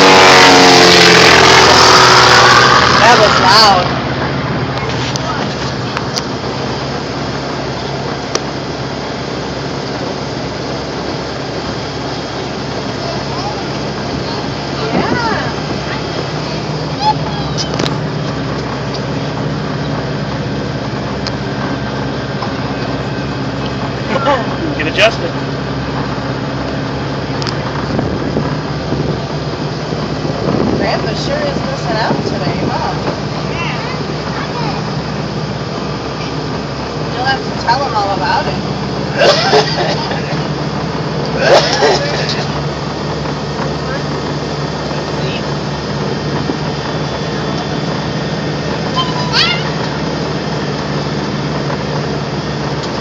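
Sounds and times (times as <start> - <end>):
vehicle engine running steadily: 0.0 - 53.0
voices: 2.4 - 4.0, 4.6 - 8.4, 11.1 - 25.6, 30.7 - 50.6.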